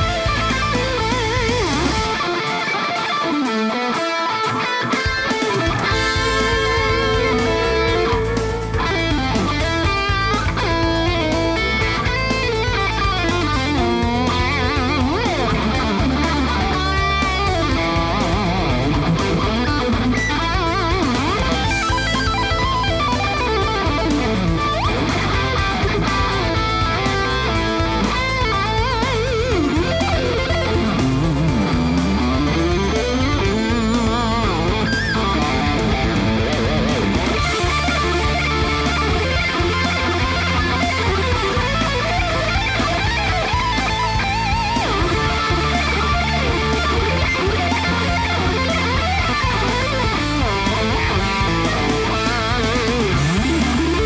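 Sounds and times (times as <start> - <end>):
distorted electric guitar lead: 0.0 - 54.0.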